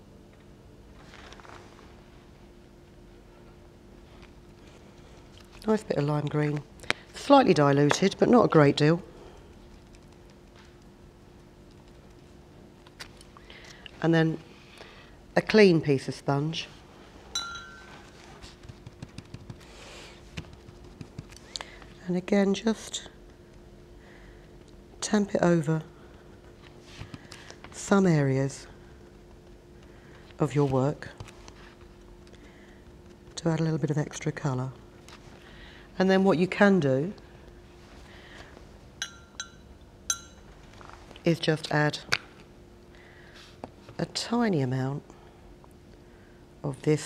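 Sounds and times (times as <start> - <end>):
brush clinking ceramic pot: 17.3 - 18.0, 39.0 - 40.5.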